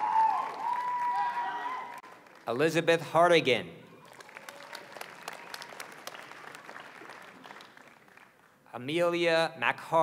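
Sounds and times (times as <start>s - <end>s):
audience applauding: 0.0s - 2.5s, 4.0s - 8.6s.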